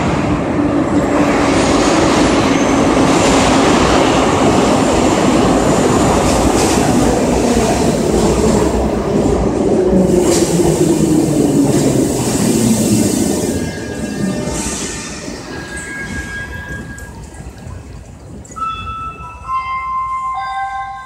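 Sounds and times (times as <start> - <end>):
metro train braking: 0.0 - 21.0.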